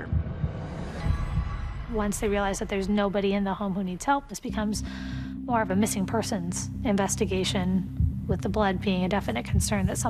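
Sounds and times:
low pulsing thumps: 0.0 - 10.0.

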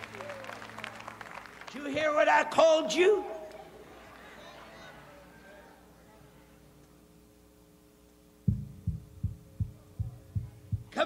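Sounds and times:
faint steady hum: 0.0 - 11.0
low thumping beat: 8.4 - 11.0.

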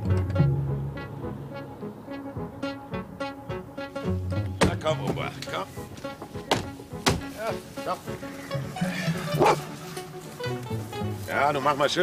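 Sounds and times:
background music: 0.0 - 12.0
sharp knocks: 4.5 - 5.3, 5.9 - 7.3
dog barking: 9.3 - 9.7.

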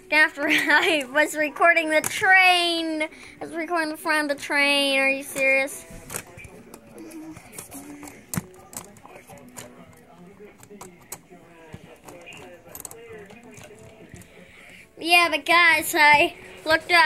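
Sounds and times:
faint voices talking: 0.0 - 17.0.

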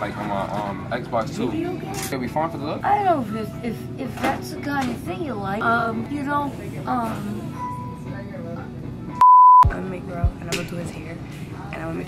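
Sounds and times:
censor bleep: 9.2 - 9.7.

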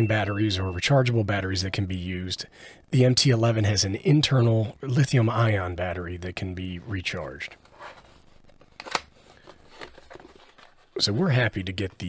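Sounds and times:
cardboard box rustling: 9.2 - 11.0.

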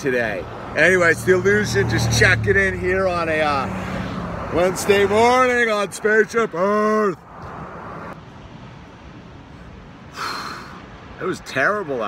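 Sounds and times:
person exhaling: 10.1 - 10.8.

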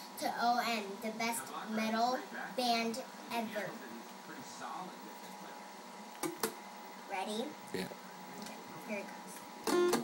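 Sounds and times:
faint hiss and hum: 0.0 - 10.0.

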